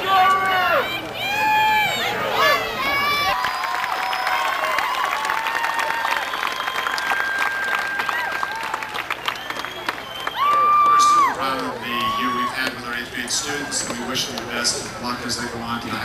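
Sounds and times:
crowd voices: 0.0s - 16.0s
audience clapping: 3.3s - 12.8s.

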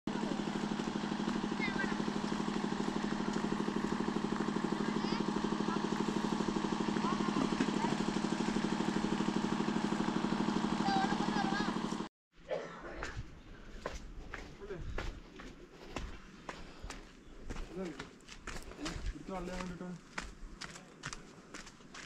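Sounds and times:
engine idling: 0.1s - 12.1s.

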